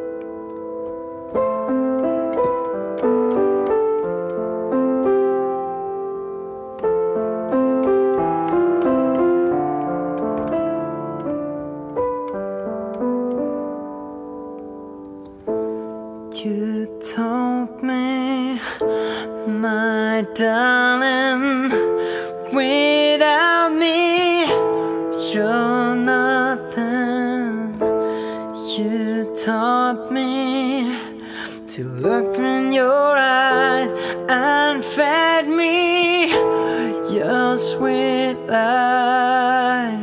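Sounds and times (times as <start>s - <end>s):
piano chords and melody: 0.0s - 40.0s
man singing with vibrato: 16.4s - 40.0s.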